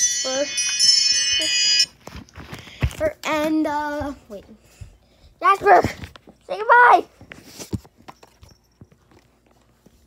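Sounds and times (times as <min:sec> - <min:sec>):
faint high ringing: 0:00.0 - 0:02.0, 0:08.1 - 0:09.2.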